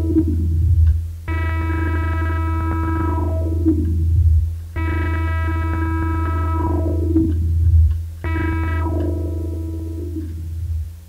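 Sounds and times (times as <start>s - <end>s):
low synthesizer bass tone: 0.0s - 11.0s
struck ringing string tones: 4.8s - 10.3s.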